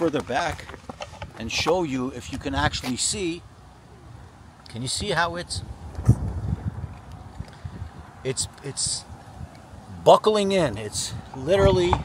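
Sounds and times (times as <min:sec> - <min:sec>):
wind buffeting microphone: 0:05.0 - 0:12.0.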